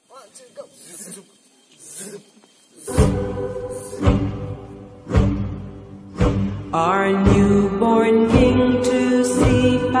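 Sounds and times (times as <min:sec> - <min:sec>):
soft hissing noise: 0:00.0 - 0:06.8.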